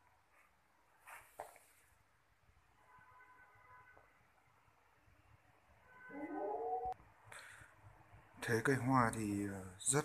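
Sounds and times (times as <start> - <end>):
rising animal call: 6.1 - 7.0.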